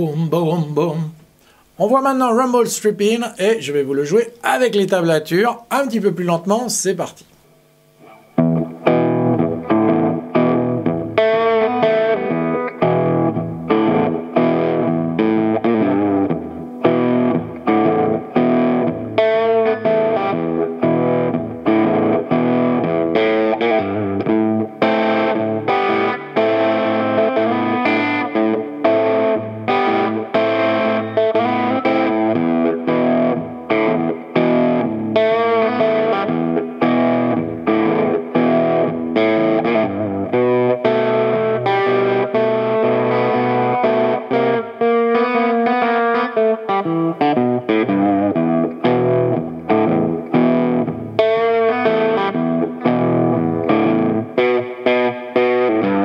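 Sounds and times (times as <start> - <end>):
fingerpicked electric guitar blues: 0.0 - 56.0.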